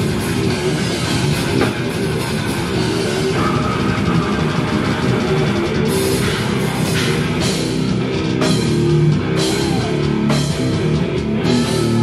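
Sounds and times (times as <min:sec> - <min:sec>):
distorted electric guitars: 0:00.0 - 0:12.0
fast drumming: 0:00.0 - 0:12.0.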